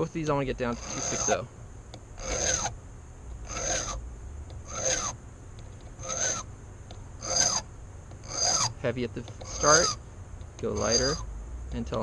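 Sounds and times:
file rasping across brass: 0.7s - 1.4s, 2.2s - 2.7s, 3.5s - 4.0s, 4.7s - 5.2s, 6.0s - 6.4s, 7.2s - 7.6s, 8.2s - 10.0s, 10.7s - 11.2s.

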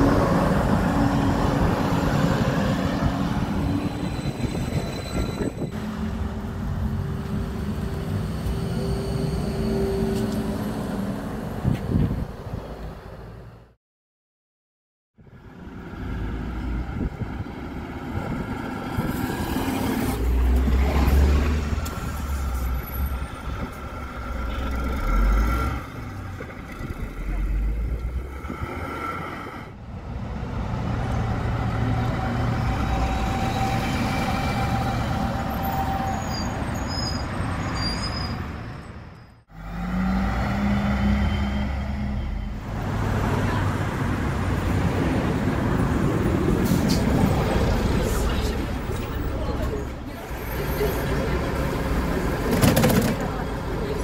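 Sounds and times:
bus diesel engines running: 0.0s - 13.7s, 15.3s - 54.0s.

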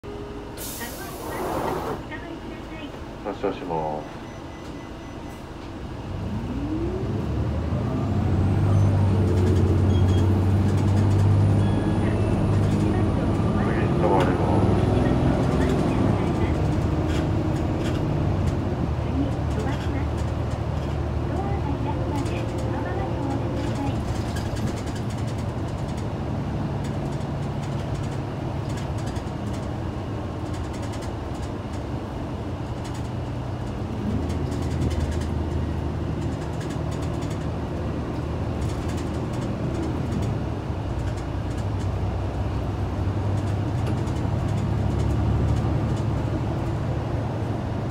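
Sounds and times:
bus diesel engine accelerating: 0.0s - 47.9s.

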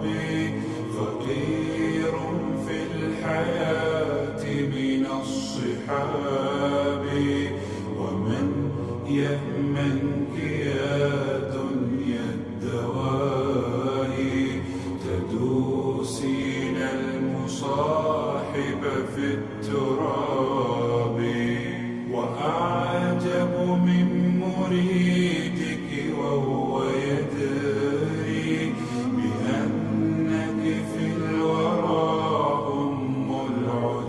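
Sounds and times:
backing voices holding low notes: 0.0s - 34.0s
man singing a cappella: 0.0s - 34.0s.

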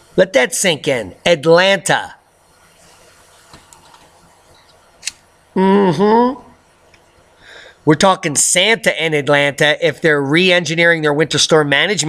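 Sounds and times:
microphone hiss: 0.0s - 12.0s.

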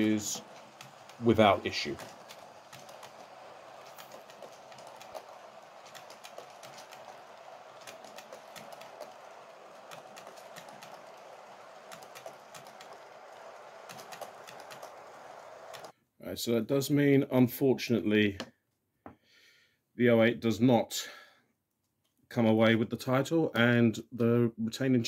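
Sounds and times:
model train running hum: 0.0s - 15.9s
wheels clicking on rails: 0.0s - 15.9s.

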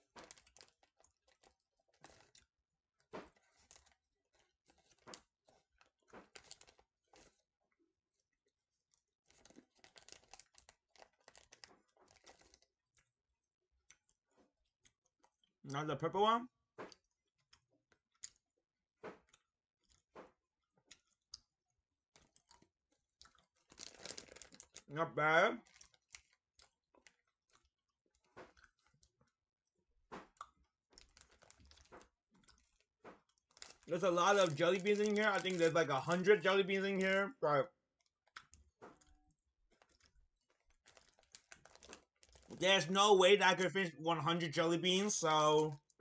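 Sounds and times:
plastic candy bag crinkling: 0.0s - 13.2s, 21.0s - 29.3s, 30.2s - 43.7s, 44.3s - 46.0s
faint chewing clicks: 20.8s - 24.8s, 38.0s - 42.6s.

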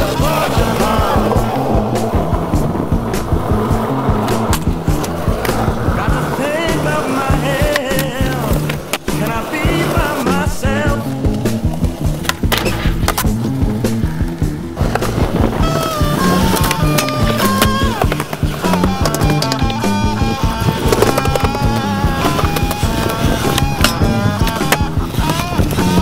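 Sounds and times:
music with steady beat: 0.0s - 26.0s
skateboard wheels rolling on concrete: 0.0s - 26.0s
skateboard clacks popping and landing: 0.1s - 26.0s.

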